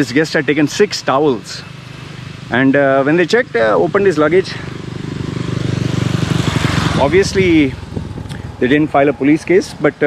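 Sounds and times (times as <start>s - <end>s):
motorcycle engine passing: 0.0s - 10.0s.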